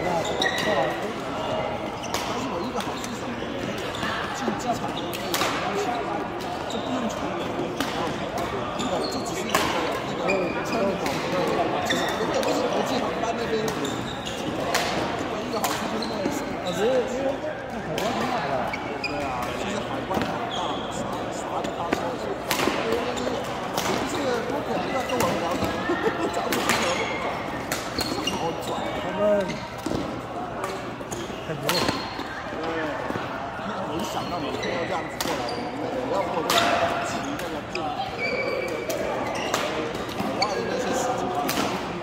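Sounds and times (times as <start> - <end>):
people talking: 0.0 - 42.0.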